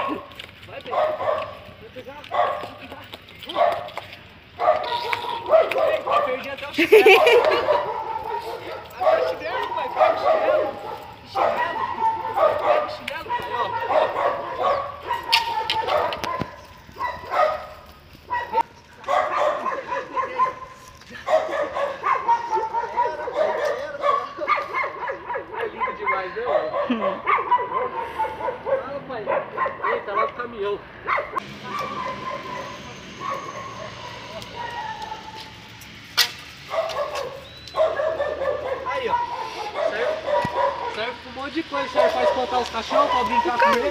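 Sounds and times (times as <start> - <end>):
dog yipping and whining: 31.0 - 35.4, 36.7 - 40.9.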